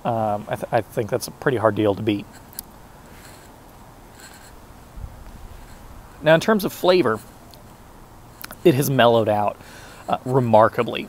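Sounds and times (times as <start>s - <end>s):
background hiss: 0.0s - 11.0s
faint rustles: 2.2s - 8.7s.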